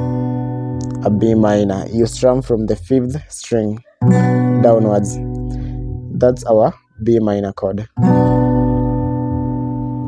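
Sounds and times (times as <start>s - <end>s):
acoustic guitar chord strummed: 0.0s - 6.8s, 7.9s - 10.0s.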